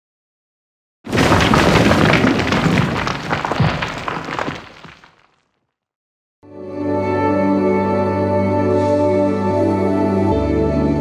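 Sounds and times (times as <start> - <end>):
stone crumbling and shattering: 1.1 - 5.6.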